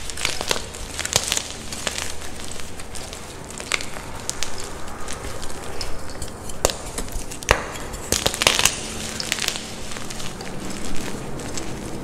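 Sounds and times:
chalk crumbling: 0.0s - 12.0s
chalk pieces crunching: 0.0s - 12.0s.

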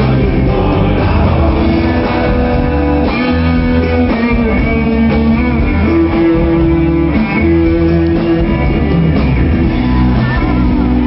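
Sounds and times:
guitar: 0.0s - 11.0s
live rock band playing: 0.0s - 11.0s.

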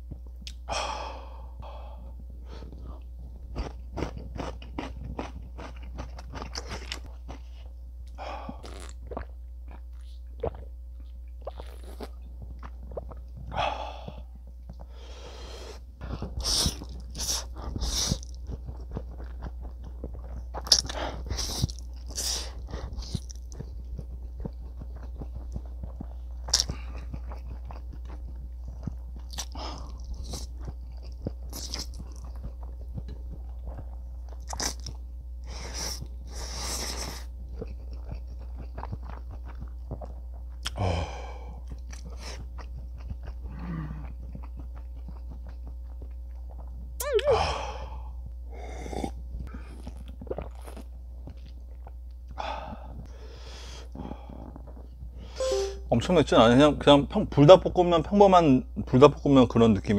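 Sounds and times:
chewing: 2.6s - 14.9s, 16.0s - 40.8s, 41.4s - 47.0s, 48.8s - 52.8s, 53.9s - 55.4s.

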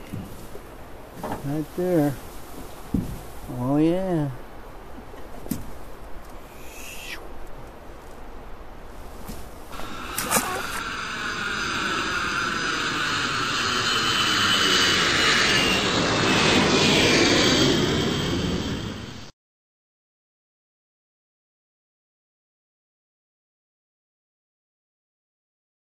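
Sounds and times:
aircraft passing overhead: 9.7s - 19.3s.

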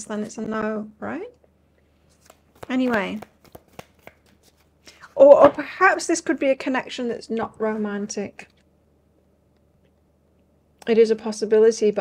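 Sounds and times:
cards being shuffled: 2.0s - 4.8s.

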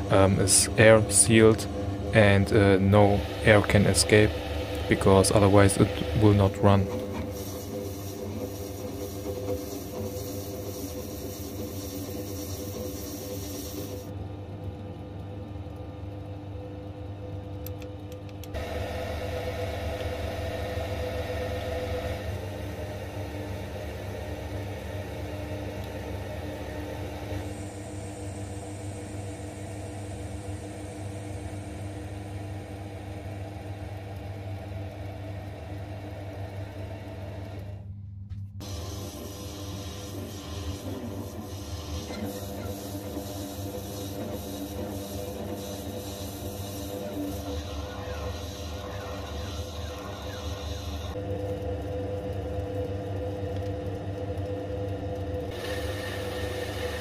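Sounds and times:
lathe motor hum: 0.0s - 14.1s, 18.4s - 37.8s, 38.6s - 57.0s
drill boring into brass: 38.6s - 51.2s.

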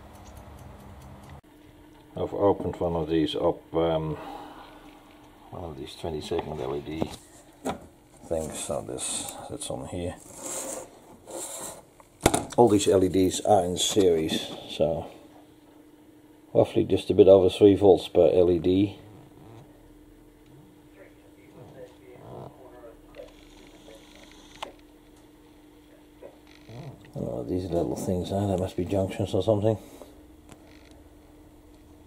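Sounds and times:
faint electrical hum: 0.0s - 32.0s
handling scraping rubs: 10.0s - 11.9s.

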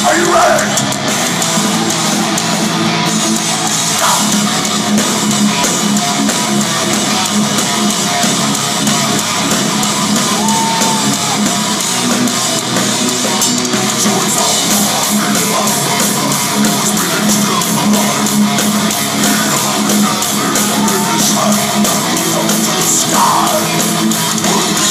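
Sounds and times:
distorted electric guitars: 0.0s - 24.9s
drum kit: 0.0s - 24.9s.

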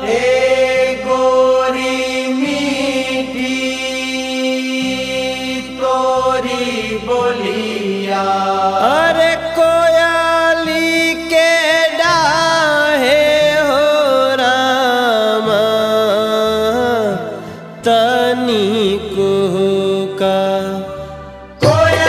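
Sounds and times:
folk melody with sliding notes: 17.8s - 22.0s.

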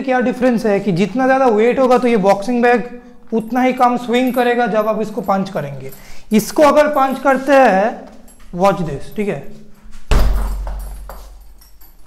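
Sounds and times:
chains clinking: 2.1s - 12.0s
punch on heavy bag: 10.1s - 11.2s.

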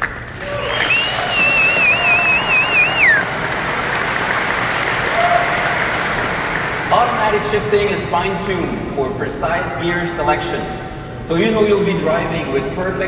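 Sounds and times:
audience applauding: 0.0s - 7.4s
long warbling whistle: 0.5s - 3.3s.

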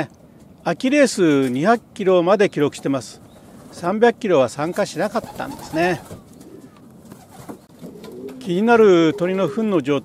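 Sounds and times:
pigeons cooing faintly: 0.2s - 10.0s.

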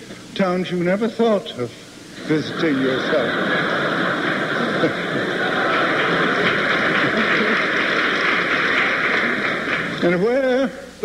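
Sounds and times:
audience laughing: 2.2s - 10.3s
audience applauding: 2.2s - 10.6s.

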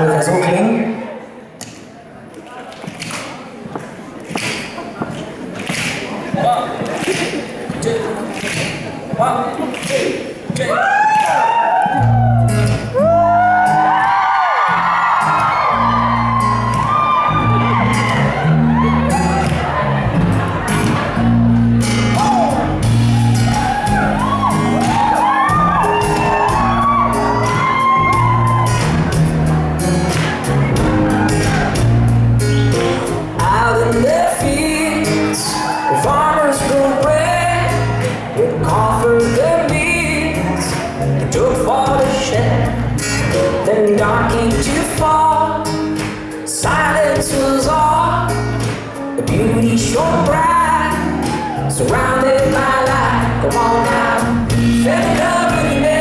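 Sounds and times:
murmur of voices: 0.0s - 56.0s
audience snapping along: 2.4s - 11.6s, 16.6s - 33.6s, 40.4s - 43.6s, 45.8s - 46.5s, 48.4s - 49.1s
audience whooping: 10.6s - 34.3s, 35.0s - 38.5s, 50.0s - 54.2s
live band vamp: 14.7s - 56.0s
steady bass notes: 14.8s - 56.0s.

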